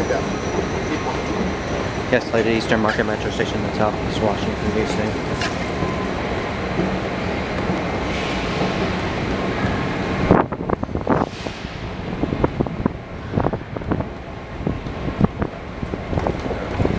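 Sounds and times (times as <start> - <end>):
escalator rumbling hiss: 0.0 - 14.7.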